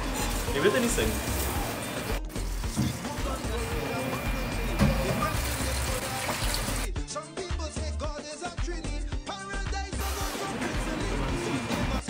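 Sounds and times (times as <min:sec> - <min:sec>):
background music: 0:00.0 - 0:12.0
tap running into sink: 0:02.7 - 0:03.2, 0:04.1 - 0:06.8.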